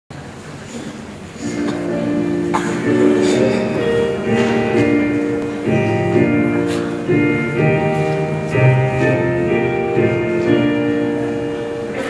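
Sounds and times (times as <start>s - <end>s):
instrumental music with held chords: 1.5s - 12.0s.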